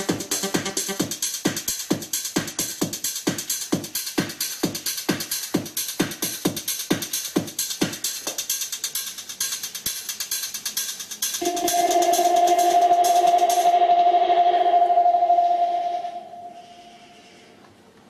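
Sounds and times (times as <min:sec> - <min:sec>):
fast hi-hat pattern: 0:00.0 - 0:14.3
held synth tone: 0:11.4 - 0:17.2.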